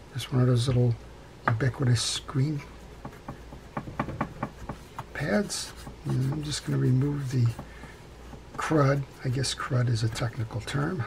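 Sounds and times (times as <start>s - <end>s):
scrub pad rasping on metal: 3.0s - 9.6s.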